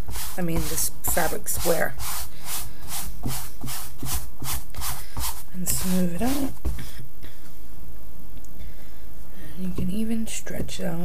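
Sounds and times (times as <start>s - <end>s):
palms rubbing fabric: 0.0s - 7.0s.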